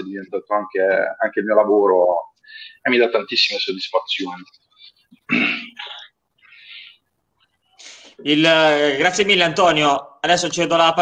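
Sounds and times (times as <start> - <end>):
breath into microphone: 7.8 - 8.2.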